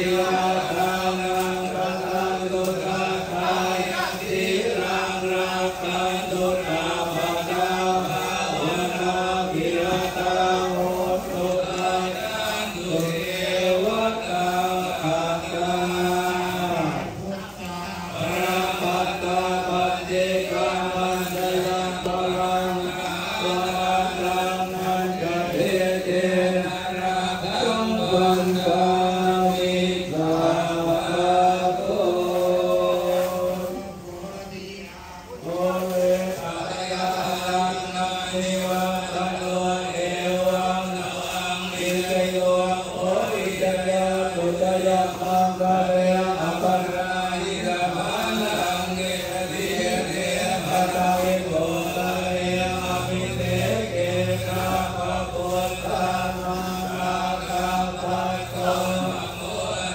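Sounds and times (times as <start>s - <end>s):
monks chanting in unison: 0.0s - 59.9s.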